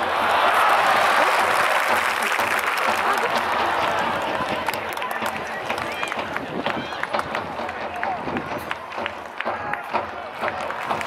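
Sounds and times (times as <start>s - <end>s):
crowd murmur: 0.0s - 11.0s
scattered clapping: 0.3s - 11.0s.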